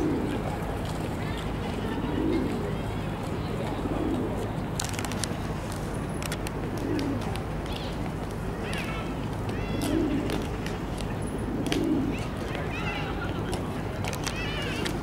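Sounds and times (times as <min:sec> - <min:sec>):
pigeons cooing: 0:00.0 - 0:04.6, 0:06.4 - 0:07.4, 0:09.5 - 0:10.6, 0:11.2 - 0:13.6.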